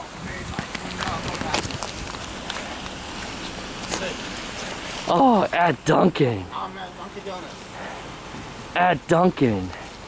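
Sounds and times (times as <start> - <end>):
footsteps on wet pavement: 0.0 - 5.6, 7.2 - 8.5.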